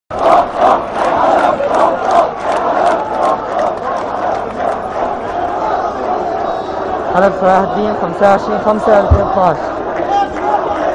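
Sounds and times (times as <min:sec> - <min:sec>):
crowd of men chanting: 0:00.1 - 0:10.9.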